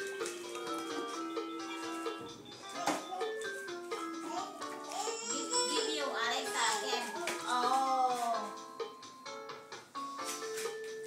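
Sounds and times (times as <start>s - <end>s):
electronic keyboard melody: 0.0s - 6.0s, 6.7s - 11.0s.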